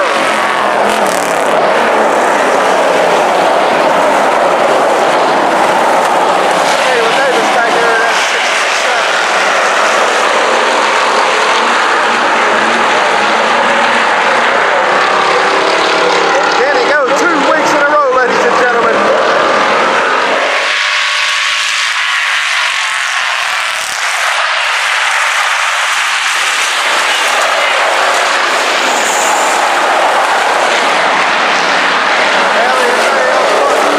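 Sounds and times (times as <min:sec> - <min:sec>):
race car engines roaring: 0:00.0 - 0:33.9.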